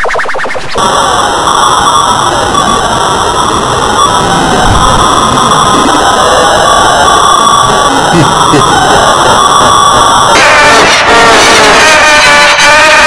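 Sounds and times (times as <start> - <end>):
distorted layered noise: 0.0 - 13.0.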